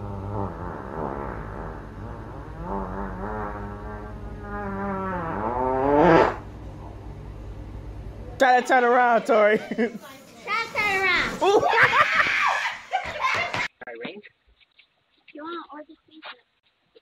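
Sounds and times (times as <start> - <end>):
long fart with squeal: 0.0 - 6.5
steady low hum: 0.0 - 11.4.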